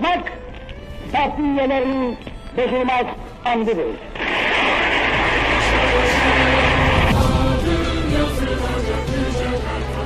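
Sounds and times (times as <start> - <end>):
audience applauding: 4.2 - 7.2.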